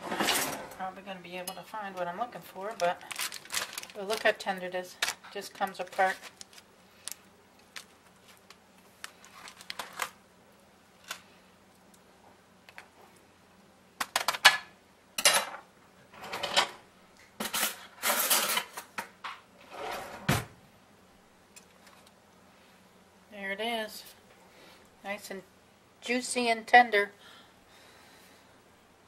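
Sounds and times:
foil crinkling: 2.3 - 10.2
cutlery clicking and scraping: 17.4 - 18.9.

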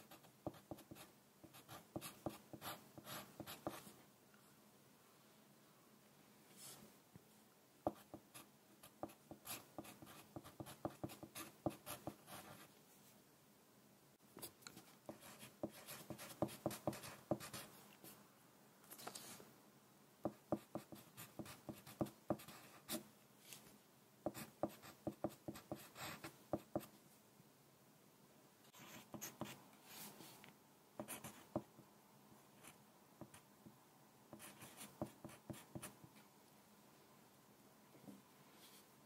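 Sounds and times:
pencil scratching on paper: 0.0 - 3.9, 7.9 - 12.7, 15.1 - 17.7, 24.2 - 26.9, 28.8 - 29.6, 31.0 - 31.6, 34.3 - 36.0.

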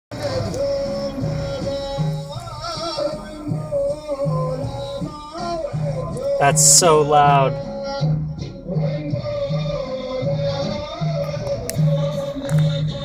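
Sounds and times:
loud song over loudspeakers: 6.2 - 7.7
repeating bass: 6.4 - 7.5.

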